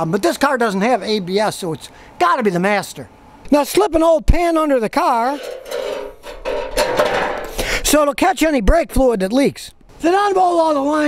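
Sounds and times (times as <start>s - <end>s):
metal pan scraping on concrete: 5.2s - 8.0s.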